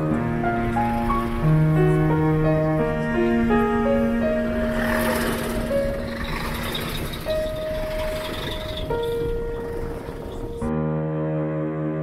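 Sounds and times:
car road and engine noise: 0:00.0 - 0:10.7
garbage truck passing: 0:00.0 - 0:10.7
music of slow held notes: 0:00.0 - 0:12.0.

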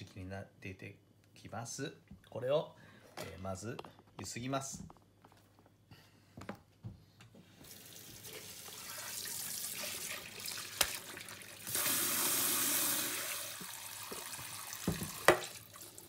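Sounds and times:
tap water splashing into bowl: 0:10.2 - 0:11.9, 0:13.5 - 0:15.7.

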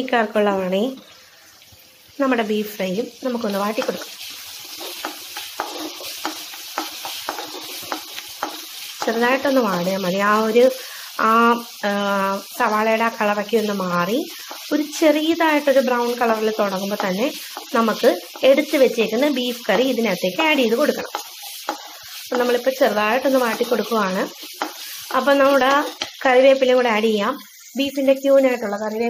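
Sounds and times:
onions sizzling in oil: 0:00.0 - 0:29.0
spatula scraping a pan: 0:03.5 - 0:12.7, 0:13.5 - 0:26.2.

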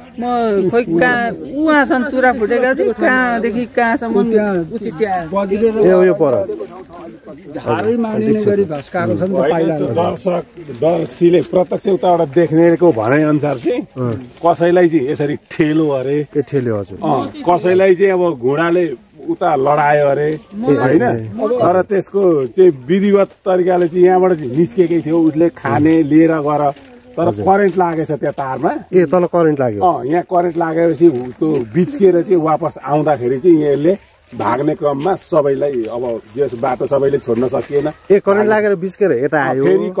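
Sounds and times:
man speaking: 0:04.1 - 0:40.0.

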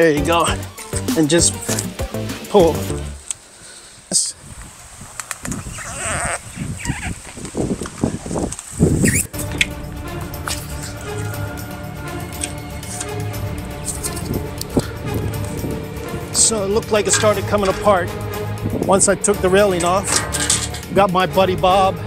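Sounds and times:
background music with sustained tones: 0:00.0 - 0:03.2, 0:09.3 - 0:22.0.

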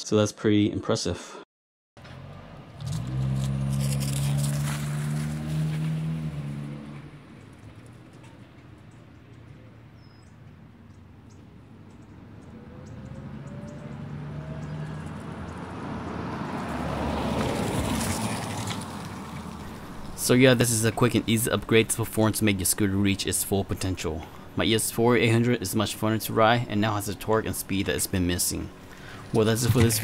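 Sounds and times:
car driving past: 0:02.0 - 0:30.0
vehicle engine hum: 0:02.0 - 0:30.0.

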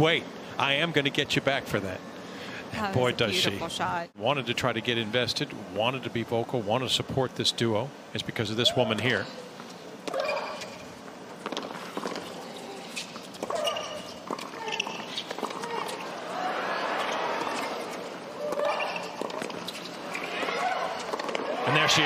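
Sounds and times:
crowd noise: 0:11.8 - 0:22.0.

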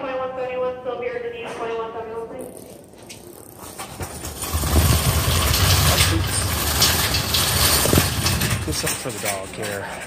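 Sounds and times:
shopping cart wheels rattling: 0:03.4 - 0:10.0.

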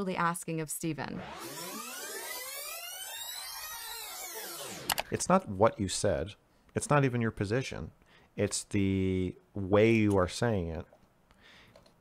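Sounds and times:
tape rewind sound effect: 0:01.0 - 0:05.1.

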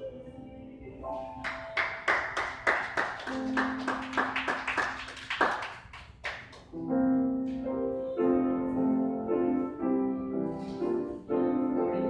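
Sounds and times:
piano music: 0:00.0 - 0:05.1, 0:06.7 - 0:12.0
hand claps: 0:01.4 - 0:06.7.

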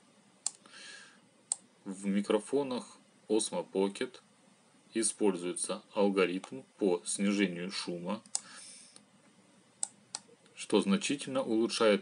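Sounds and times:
faint breathy hiss: 0:00.4 - 0:03.1, 0:07.2 - 0:09.8.

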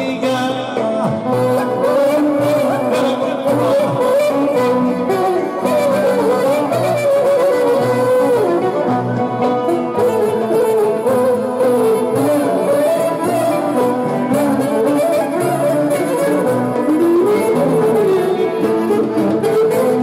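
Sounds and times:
folk band playing dance tune: 0:00.0 - 0:20.0.

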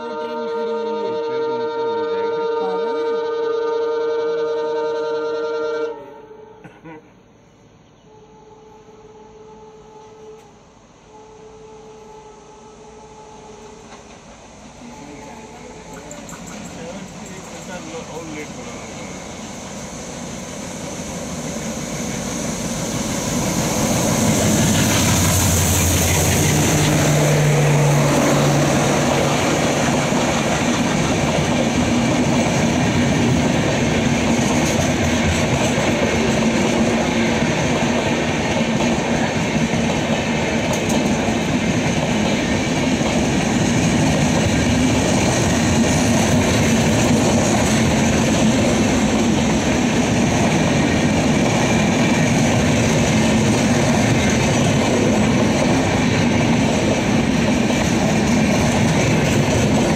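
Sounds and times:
diesel locomotive engine: 0:00.0 - 0:59.9
train coaches clacking on rails: 0:13.6 - 0:20.5, 0:21.3 - 0:59.9.

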